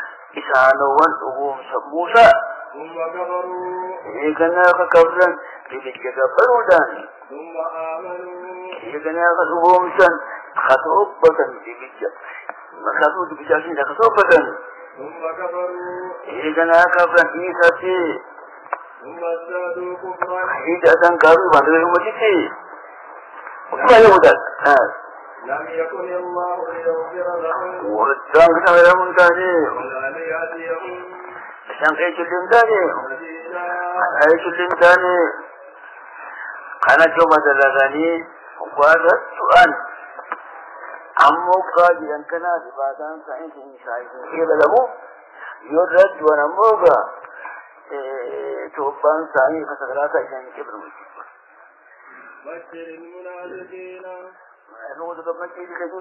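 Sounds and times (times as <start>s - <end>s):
man speaking: 0.0s - 22.7s, 23.5s - 56.0s
steady background hiss: 0.0s - 56.0s.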